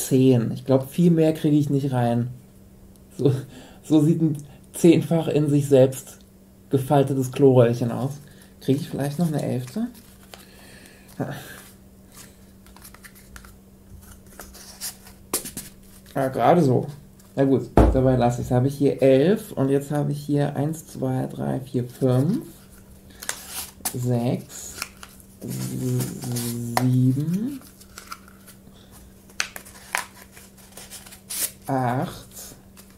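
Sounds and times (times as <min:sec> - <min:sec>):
cardboard tubes scraping and crinkling: 0:24.6 - 0:31.9.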